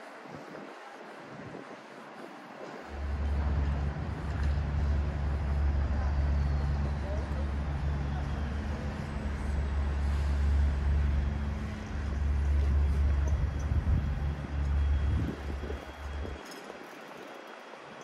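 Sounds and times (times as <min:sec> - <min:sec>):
street traffic: 0:00.1 - 0:18.0
large vehicle engine humming: 0:02.8 - 0:16.5.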